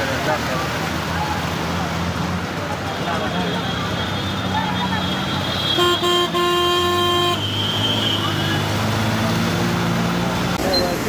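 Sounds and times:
street background noise: 0:00.0 - 0:11.0
vehicle horn honking: 0:03.4 - 0:08.7.

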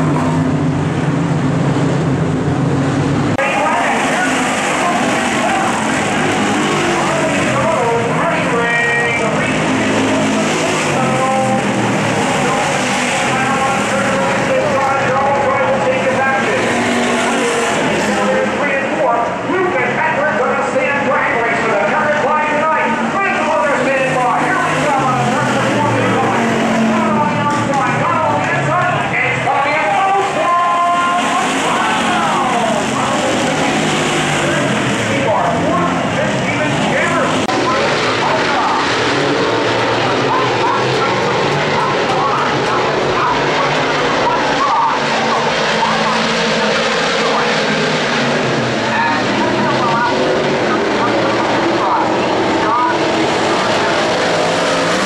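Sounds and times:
race car engines revving past: 0:00.0 - 0:55.0.

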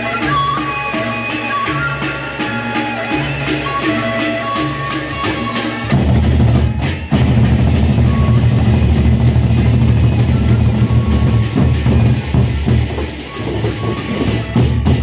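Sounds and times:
barrel drums beaten with sticks: 0:05.9 - 0:15.0.

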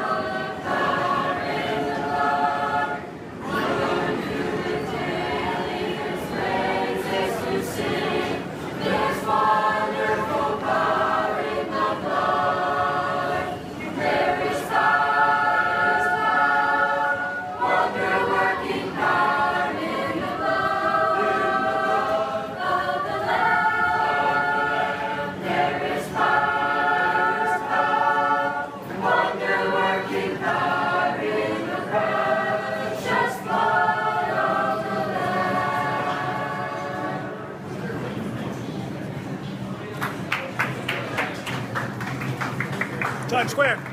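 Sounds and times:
choir singing a hymn: 0:00.0 - 0:38.3.

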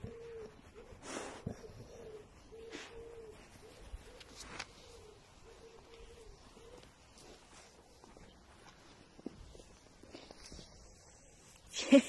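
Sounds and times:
dogs moving on grass: 0:00.0 - 0:11.7.

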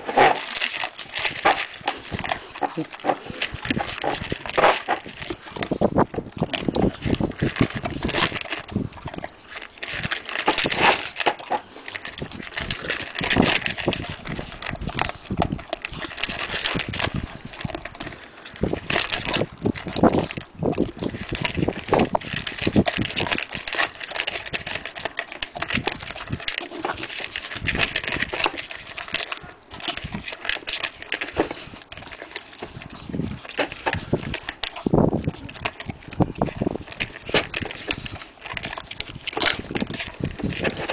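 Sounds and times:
dog crunching kibble: 0:00.0 - 0:40.9
pellets clattering in plastic bowl: 0:00.0 - 0:40.9.

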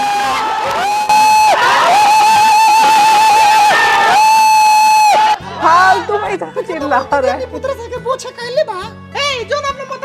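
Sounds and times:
audience cheering and whooping: 0:00.0 - 0:05.6.

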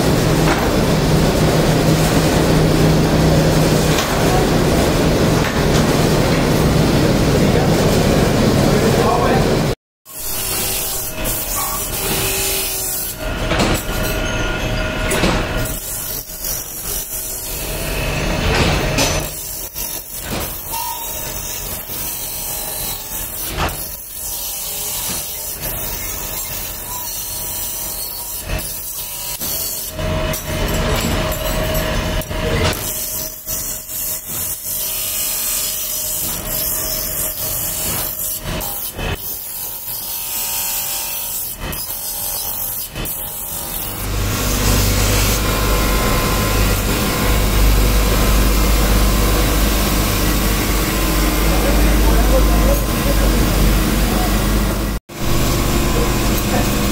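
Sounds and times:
grinder grinding steel: 0:10.1 - 0:56.9
faint motor hum: 0:44.0 - 0:56.9.

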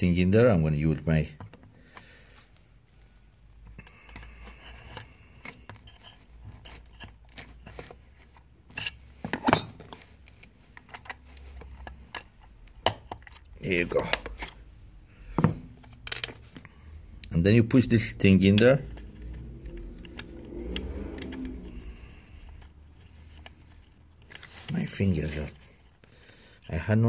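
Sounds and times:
metal tool clicking and scraping plastic: 0:03.6 - 0:14.7, 0:15.8 - 0:26.7.

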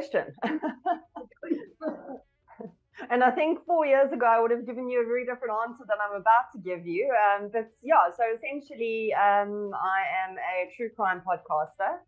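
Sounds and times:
woman laughing softly: 0:00.4 - 0:03.1.

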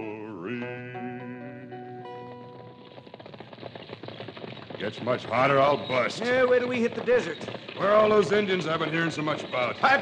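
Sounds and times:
horses' hooves clattering: 0:00.0 - 0:10.0.

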